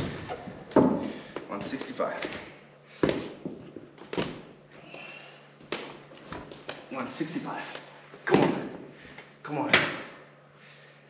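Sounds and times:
movement noises: 0:00.0 - 0:10.1.

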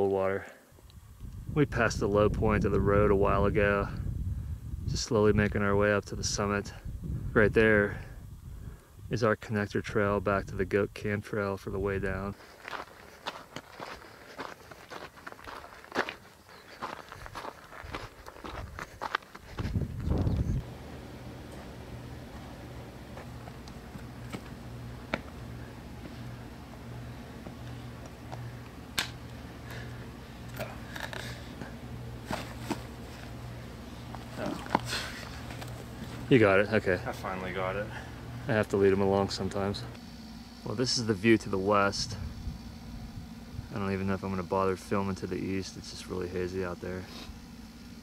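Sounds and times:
steady low hum: 0:00.0 - 0:48.0
footsteps on gravel road: 0:12.2 - 0:20.2, 0:22.3 - 0:25.4, 0:30.9 - 0:36.3.

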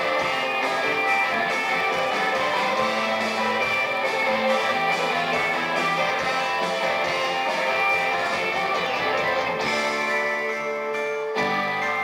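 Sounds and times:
drums: 0:00.0 - 0:12.0
live rock band playing: 0:00.0 - 0:12.0
strummed electric guitars: 0:00.0 - 0:12.0.

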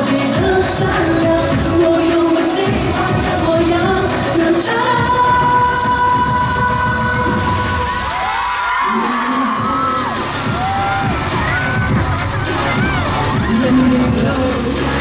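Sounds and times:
woman singing: 0:00.0 - 0:10.2, 0:13.3 - 0:15.0
dance backing track: 0:00.0 - 0:15.0
crowd cheering and screaming: 0:04.6 - 0:15.0.

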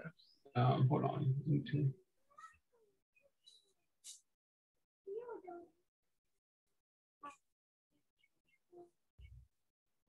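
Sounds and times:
faint small sounds: 0:00.0 - 0:04.4.

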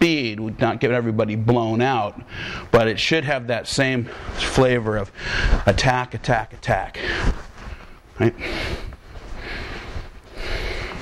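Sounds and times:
rustling on a training mat: 0:03.7 - 0:11.0.

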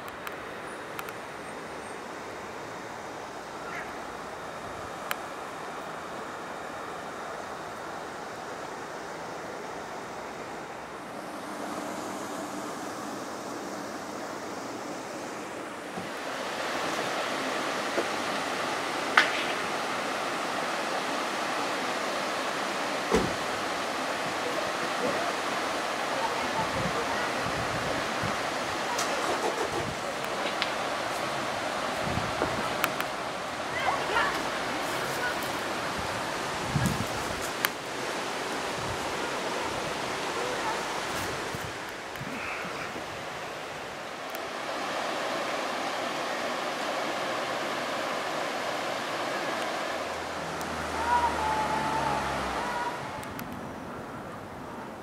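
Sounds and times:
water rushing over a weir: 0:00.0 - 0:55.0.

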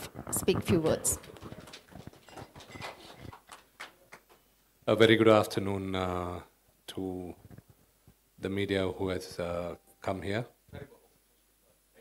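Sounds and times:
speech: 0:00.3 - 0:01.2.

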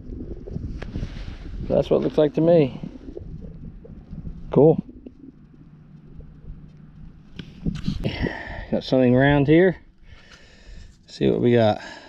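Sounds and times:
wind buffeting microphone: 0:00.0 - 0:10.9
faint steady hum: 0:00.0 - 0:12.0.

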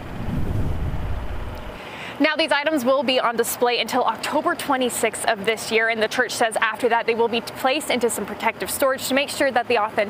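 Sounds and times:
wind buffeting microphone: 0:00.0 - 0:01.8.

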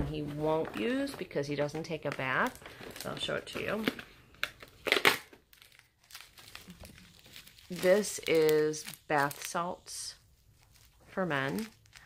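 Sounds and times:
plastic packaging crinkling: 0:00.1 - 0:12.0.

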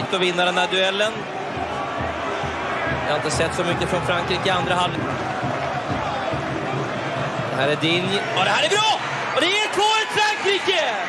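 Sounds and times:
televised football match noise: 0:00.0 - 0:11.0.

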